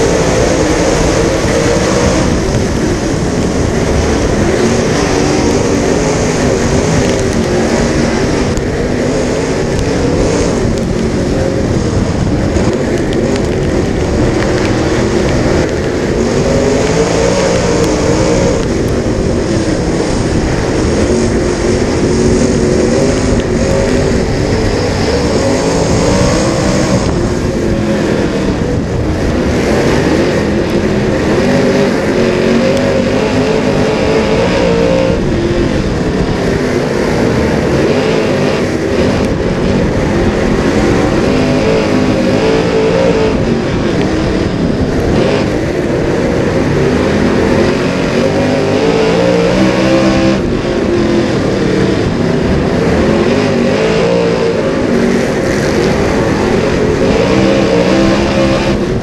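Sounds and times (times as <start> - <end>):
racing engine revving: 0.0 - 59.0.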